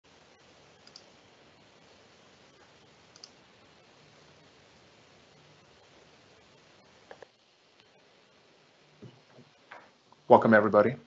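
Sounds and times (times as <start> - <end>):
faint steady hiss: 0.0 - 11.0
small clicks: 0.8 - 1.2, 3.1 - 3.4.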